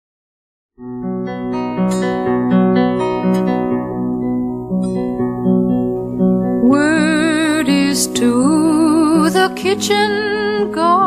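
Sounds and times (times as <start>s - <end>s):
acoustic guitar folk picking: 0.8s - 11.0s.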